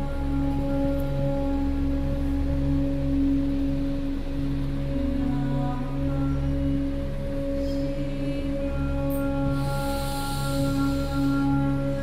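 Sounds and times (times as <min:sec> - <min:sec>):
low hum: 0:00.0 - 0:12.0
meditation music with ringing tones: 0:00.0 - 0:12.0.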